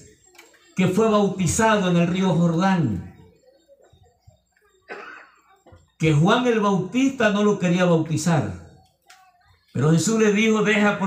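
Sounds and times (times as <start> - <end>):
man coughing into microphone: 4.8 - 5.9.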